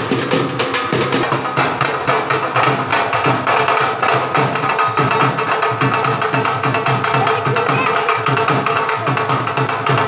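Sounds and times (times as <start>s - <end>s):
street drummers playing fast rhythm: 0.0s - 10.0s.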